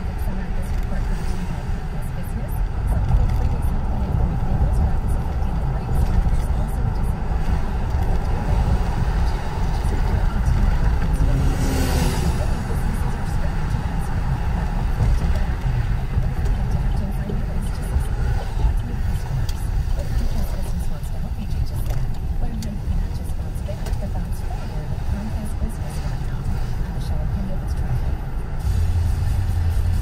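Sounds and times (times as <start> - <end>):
car cabin road and engine rumble: 0.0 - 30.0.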